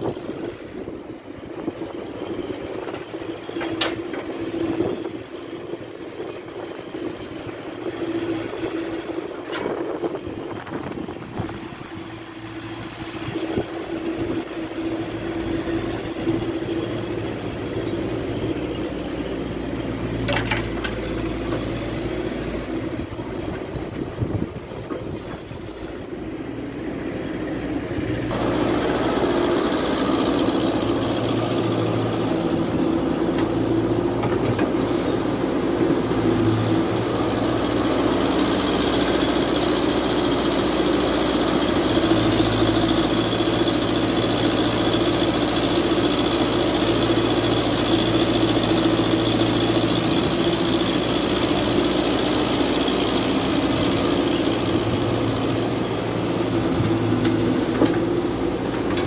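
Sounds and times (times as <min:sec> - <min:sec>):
diesel engines running: 0:00.0 - 0:59.0
garbage loading into truck: 0:56.5 - 0:59.0.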